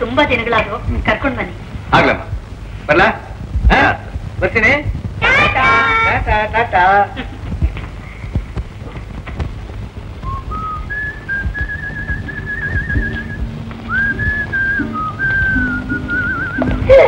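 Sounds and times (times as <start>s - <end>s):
person whistling a melody: 10.2s - 17.0s.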